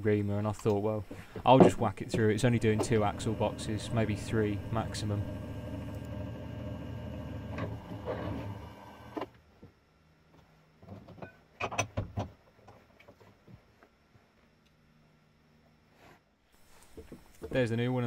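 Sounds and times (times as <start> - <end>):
mill-drill motor running: 2.1 - 9.3.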